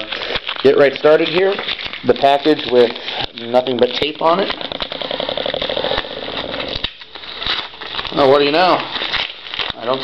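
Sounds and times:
packing tape peeling: 0.0s - 10.0s.

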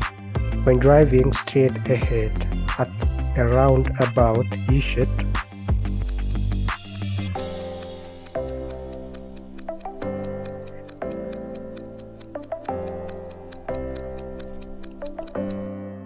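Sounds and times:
countdown timer ticking: 0.0s - 15.7s
background music with sustained chords: 0.0s - 16.0s.

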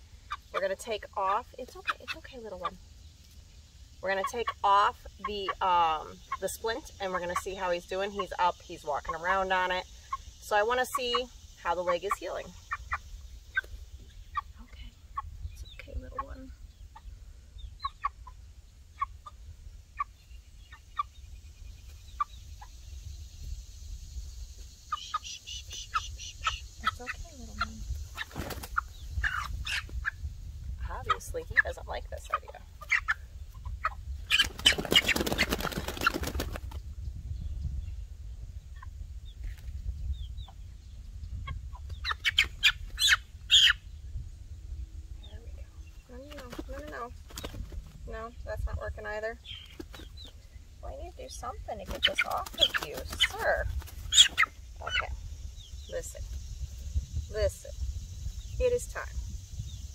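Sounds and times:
wind rumble on microphone: 4.0s - 25.0s, 25.6s - 59.9s
chick cheeping: 24.9s - 30.2s, 41.4s - 43.8s, 50.9s - 55.2s.

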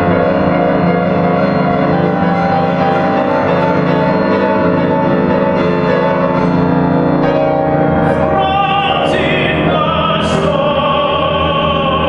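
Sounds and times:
grand piano chords: 0.0s - 12.0s
tenor singing with vibrato: 8.0s - 12.0s.

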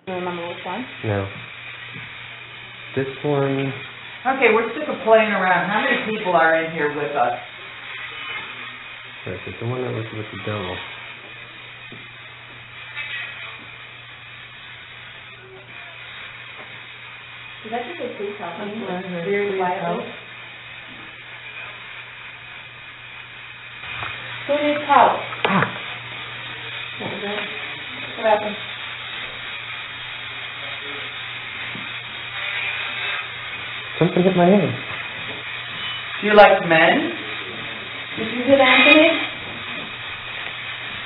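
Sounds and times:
faint indistinct noises: 0.0s - 41.0s
low hum and hiss: 0.0s - 41.0s
faint indistinct voices: 15.0s - 16.8s, 17.8s - 23.5s.

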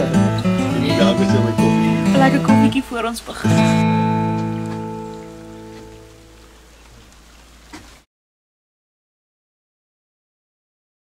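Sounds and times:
strummed acoustic guitar chord: 0.0s - 6.2s
faint hiss: 0.0s - 8.1s.

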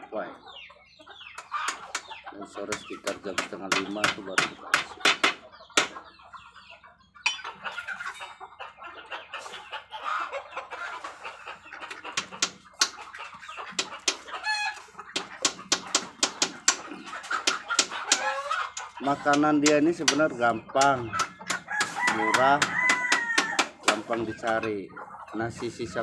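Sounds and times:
chickens clucking: 0.0s - 26.0s
bills pecking at ground: 1.2s - 6.2s, 9.2s - 26.0s.

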